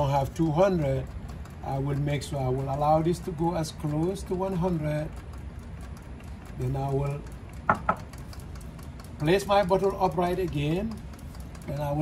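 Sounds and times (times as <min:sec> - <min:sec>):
pump humming: 0:00.0 - 0:12.0
sharp knocks on equipment: 0:07.7 - 0:08.1.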